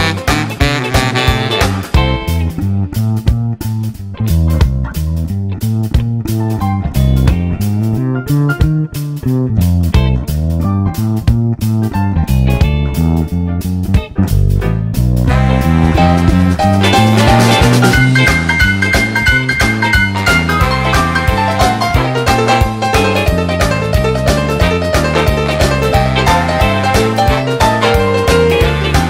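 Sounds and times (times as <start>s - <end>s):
rock and roll band playing: 0.0s - 29.0s.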